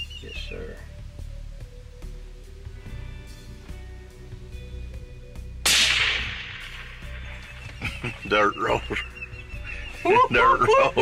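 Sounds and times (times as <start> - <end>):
rifle shot: 5.6 - 7.2.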